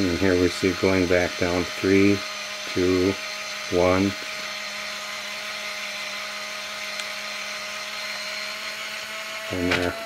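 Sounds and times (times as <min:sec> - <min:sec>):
camera motor whine: 0:00.0 - 0:10.0.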